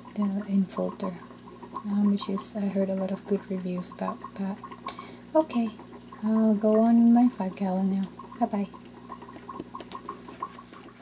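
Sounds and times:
sponge filter bubbling: 0.0 - 11.0.

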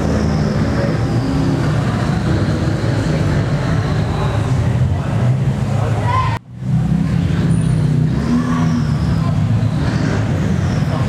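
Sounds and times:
car engines running at low revs: 0.0 - 11.0
voices in background: 0.0 - 11.0.

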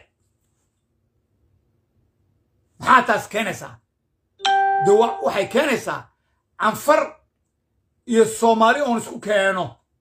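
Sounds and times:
man talking: 2.8 - 3.8, 4.6 - 6.0, 6.6 - 7.2, 8.1 - 9.8
electronic chime ringing: 4.4 - 5.7.

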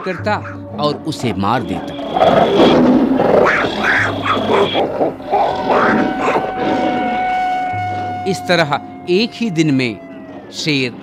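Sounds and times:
lion roaring and growling: 1.5 - 8.2
background music with held note: 5.1 - 11.0.

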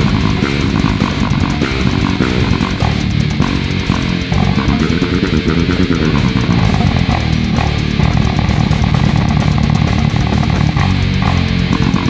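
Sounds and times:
fretless electric bass run: 0.0 - 12.0
heavy metal band track: 0.0 - 12.0.

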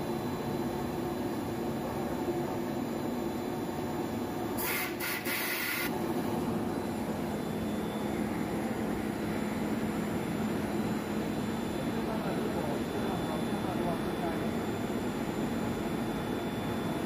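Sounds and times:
machine hum: 5.9 - 17.0.

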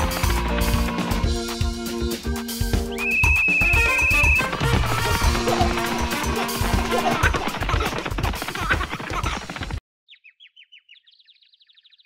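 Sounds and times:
cheerful background music: 0.0 - 9.3
referee's whistle trilling: 2.9 - 4.5.

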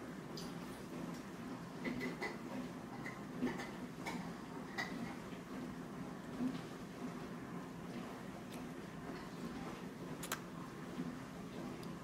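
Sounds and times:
wet chewing clicks: 10.2 - 10.5.

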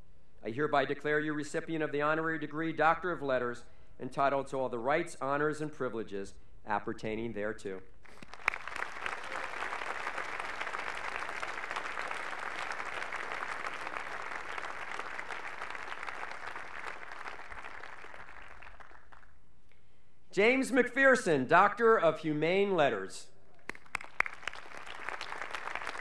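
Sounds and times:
audience applauding: 8.1 - 19.3, 23.7 - 26.0.

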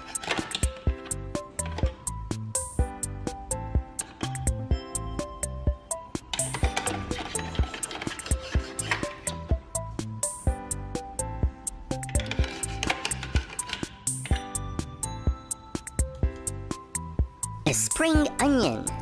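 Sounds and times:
background music with steady beat: 0.0 - 19.0.

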